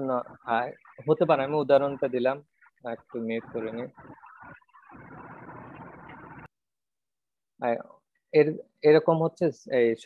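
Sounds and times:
steady rushing noise: 0.2 - 6.5.

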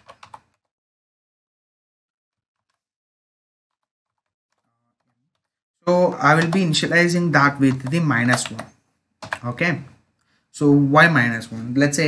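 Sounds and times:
faint keyboard typing: 0.0 - 0.7, 6.3 - 9.6
man speaking: 5.8 - 8.7, 9.4 - 10.0, 10.6 - 12.0.

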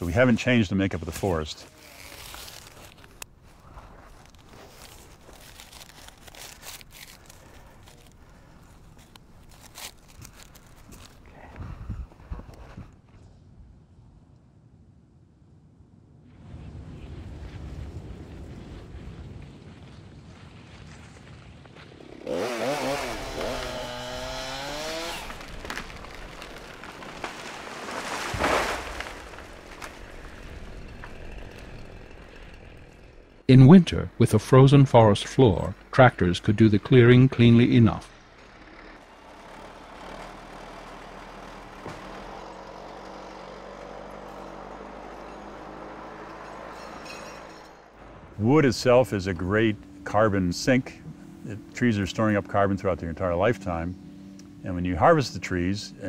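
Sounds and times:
chainsaw running and revving: 1.7 - 3.0, 22.0 - 33.4, 38.1 - 47.8.

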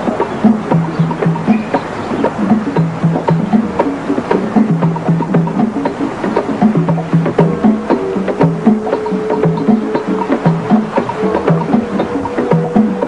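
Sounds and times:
low drum strokes: 0.0 - 13.0.

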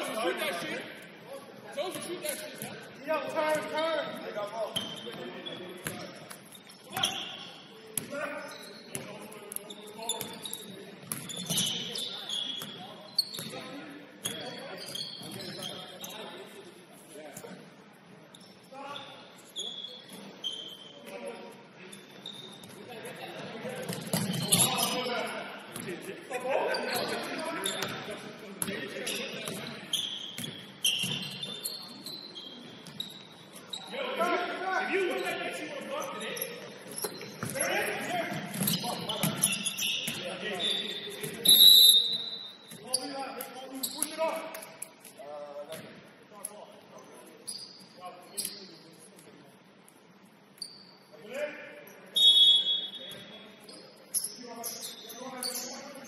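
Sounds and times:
sneaker squeaks: 1.8 - 16.6, 18.3 - 22.9, 23.8 - 26.0, 26.6 - 34.3, 35.1 - 49.3, 50.5 - 56.0.

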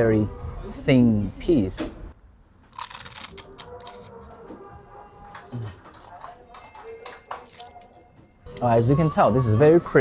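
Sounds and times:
wafer crunching while chewed: 2.7 - 4.6.

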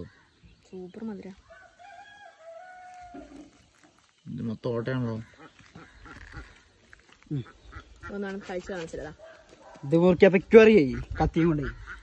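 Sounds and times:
rooster crowing: 1.4 - 3.5.

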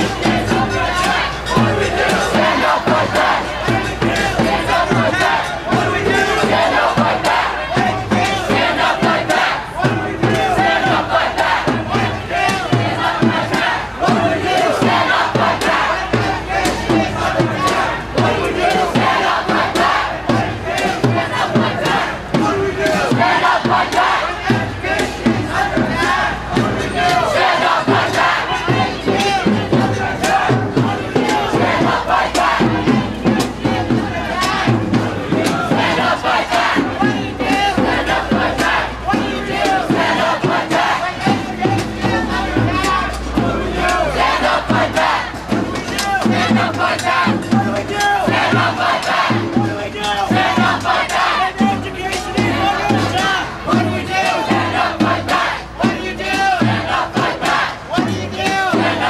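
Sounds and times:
crowd shouting: 0.0 - 59.0.

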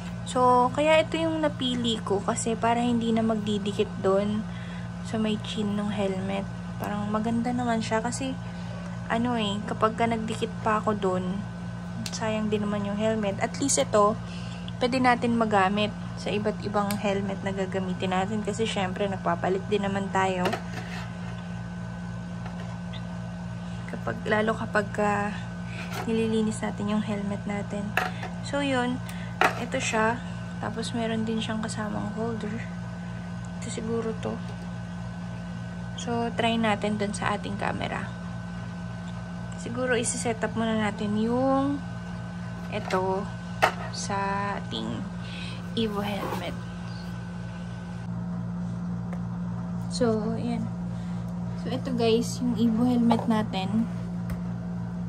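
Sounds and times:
low mechanical hum: 0.0 - 55.0.

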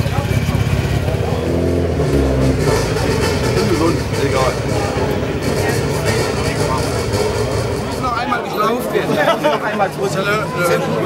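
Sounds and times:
rally car engine at low revs: 0.0 - 8.0
people talking: 0.0 - 11.0.

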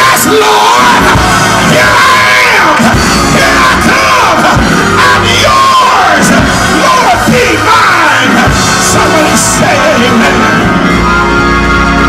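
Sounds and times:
preacher chanting sermon: 0.0 - 11.6
sustained keyboard chords: 0.8 - 12.0.

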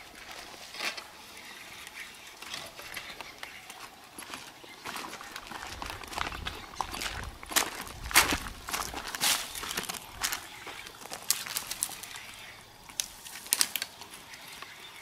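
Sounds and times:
footsteps on dirt and dead leaves: 2.4 - 14.5.

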